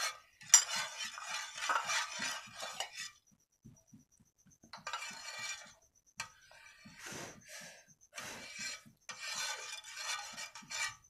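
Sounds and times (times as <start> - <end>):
spoon scraping in steel pot: 0.0 - 3.3, 4.7 - 11.0.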